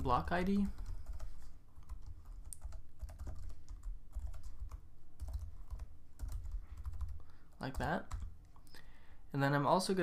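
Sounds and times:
typing on computer keyboard: 0.6 - 8.3.

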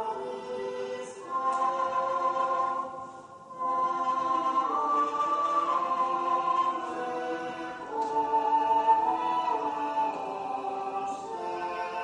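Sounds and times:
choir singing a sacred chant: 0.0 - 12.0.

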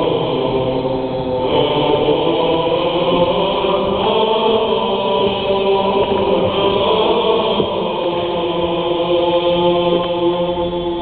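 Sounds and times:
choir singing a hymn unaccompanied: 0.0 - 11.0.

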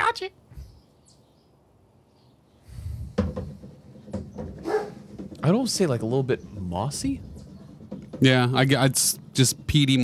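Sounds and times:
breathy exhale: 2.6 - 3.2.

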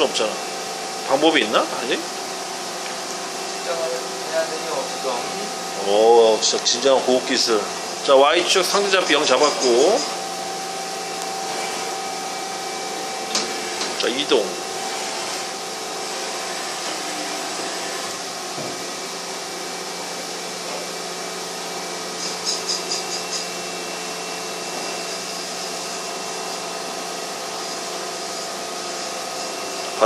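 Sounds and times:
machine hum and whine: 0.0 - 30.0.

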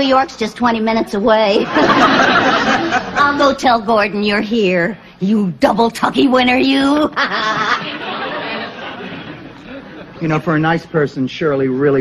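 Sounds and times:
studio audience laughing: 1.5 - 3.4, 7.1 - 10.2.

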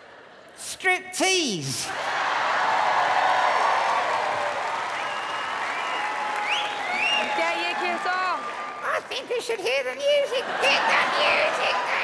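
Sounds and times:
audience applauding: 1.9 - 9.6
audience laughing: 10.0 - 12.0.

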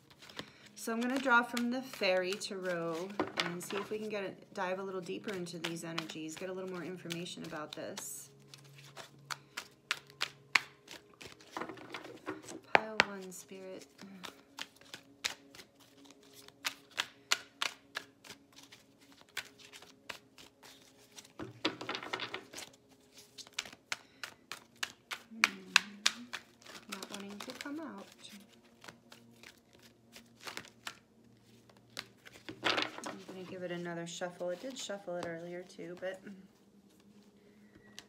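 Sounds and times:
cards being shuffled: 0.0 - 38.0
riffle of cards: 22.1 - 31.0.

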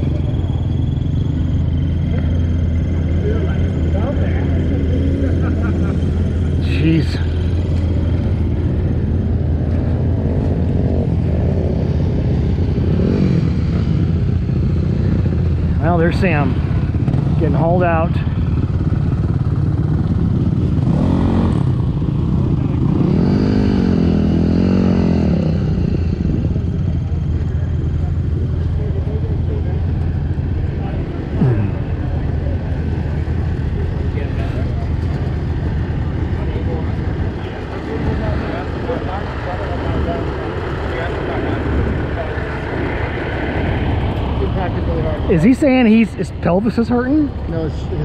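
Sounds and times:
dirt bike engine idling: 0.0 - 23.0, 26.2 - 48.0.

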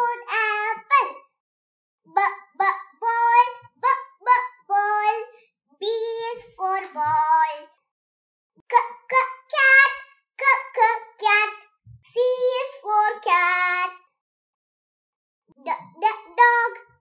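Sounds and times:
child singing chant-like phrases: 0.0 - 1.3, 2.1 - 7.8, 8.7 - 14.1, 15.6 - 17.0.

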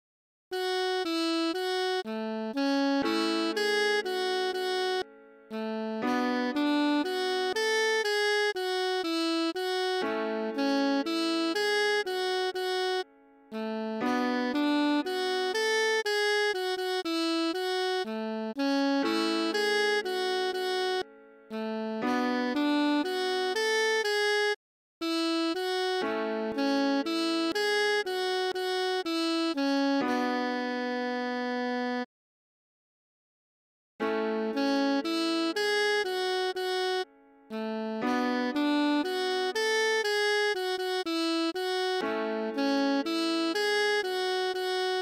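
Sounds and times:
alto saxophone melody: 0.5 - 32.1, 34.0 - 45.0.

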